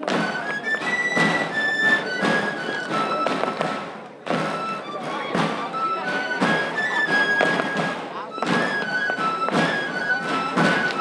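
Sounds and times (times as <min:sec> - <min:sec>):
drum strokes: 0:00.0 - 0:11.0
flute melody: 0:00.0 - 0:11.0.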